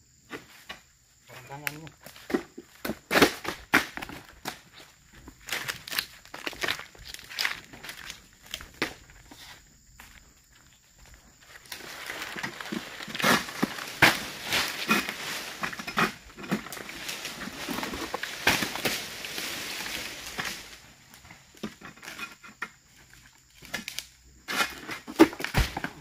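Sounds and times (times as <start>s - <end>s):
rustling and scraping of fronds: 11.3s - 22.5s.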